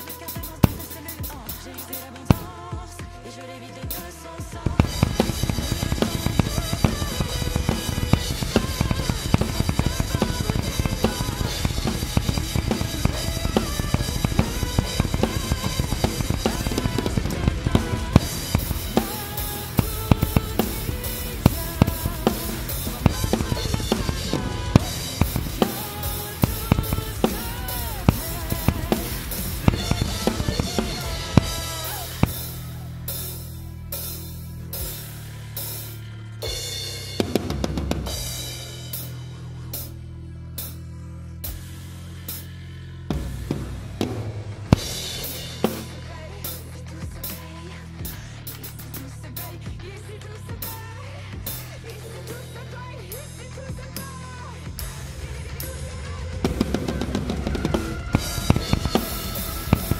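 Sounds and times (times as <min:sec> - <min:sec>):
acoustic drum kit played hard: 0:00.0 - 0:59.9
nu-metal backing track: 0:00.0 - 0:59.9.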